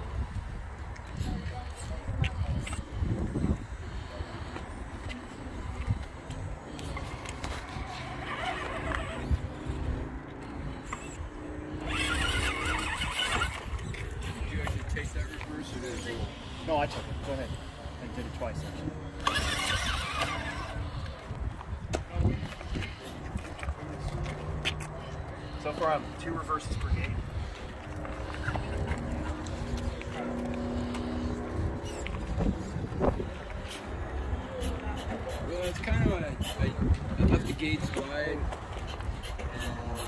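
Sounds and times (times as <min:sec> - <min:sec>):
toy car motor and gears whining: 0:06.8 - 0:09.8, 0:10.9 - 0:17.4, 0:18.0 - 0:21.3
wheels driving over rocks: 0:11.8 - 0:15.2, 0:19.1 - 0:25.0.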